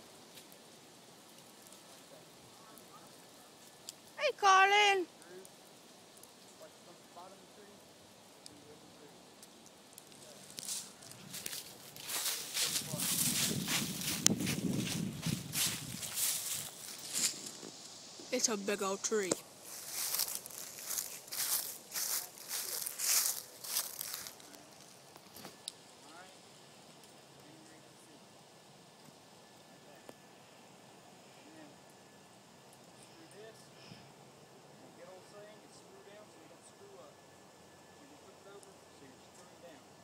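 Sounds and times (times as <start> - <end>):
rustling and scraping bursts: 10.1 - 25.6.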